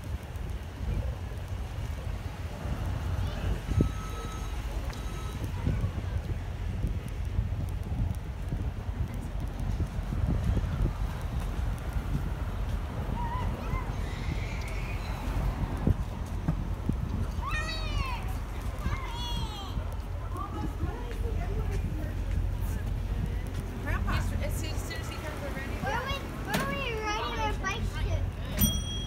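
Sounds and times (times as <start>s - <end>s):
wind rumble on microphone: 0.0s - 29.0s
faint voices: 0.4s - 28.9s.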